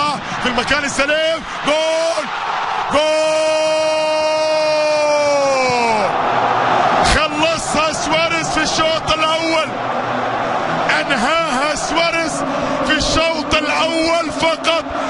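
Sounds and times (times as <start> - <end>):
commentator shouting: 0.0 - 6.1, 10.9 - 15.0
stadium crowd cheering: 0.0 - 15.0.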